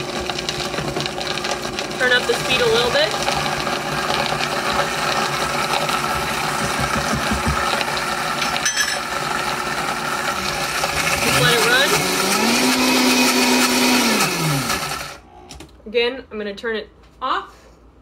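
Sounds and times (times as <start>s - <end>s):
blender motor running: 0.0s - 15.3s.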